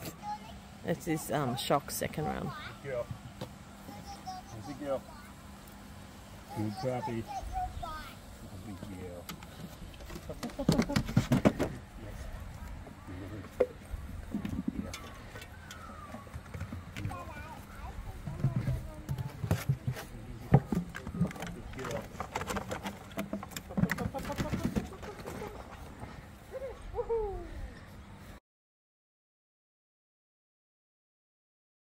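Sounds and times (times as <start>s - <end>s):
paws knocking on wooden obstacles: 9.3s - 11.8s, 12.8s - 26.2s.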